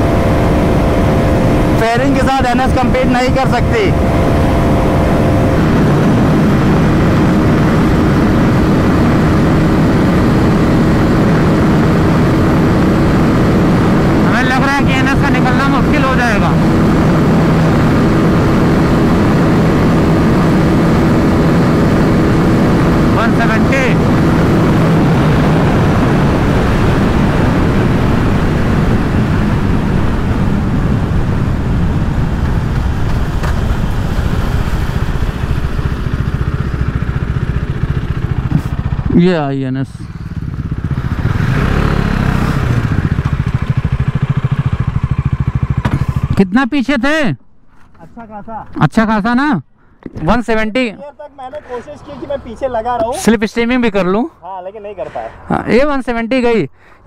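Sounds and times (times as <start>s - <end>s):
wind rush on microphone: 0.0s - 39.1s
motorcycle engine running hard: 0.0s - 46.8s.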